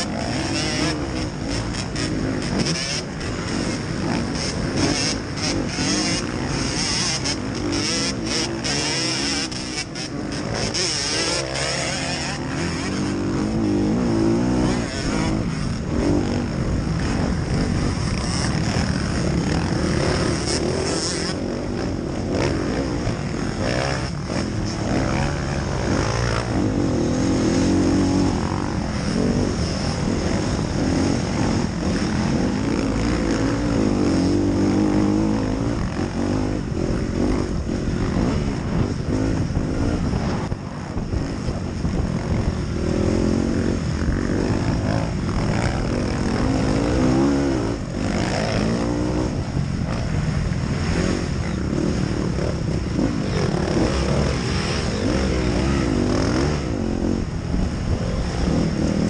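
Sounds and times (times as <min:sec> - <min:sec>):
motocross bike engine revving: 0:00.0 - 0:59.0
other dirt bikes: 0:00.0 - 0:59.0
rush of noise: 0:00.0 - 0:59.0.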